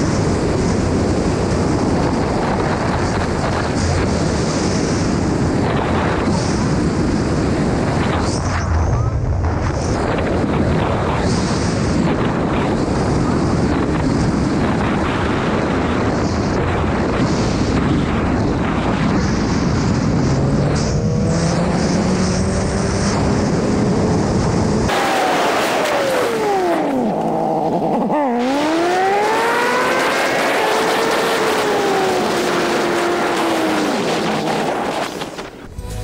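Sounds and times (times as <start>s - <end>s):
wind rush on microphone: 0.0s - 36.0s
motorcycle engine: 19.3s - 36.0s.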